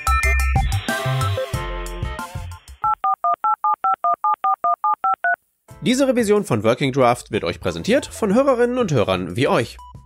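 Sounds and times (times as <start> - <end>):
touch-tone dialing beeps: 2.8 - 5.4.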